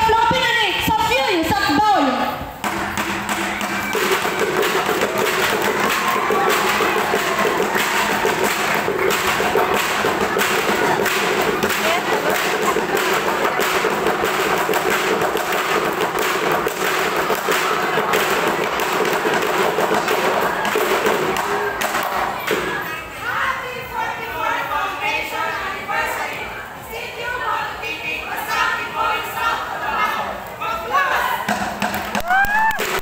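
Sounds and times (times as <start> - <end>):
fast percussion struck with sticks: 2.5 - 22.9, 31.4 - 33.0.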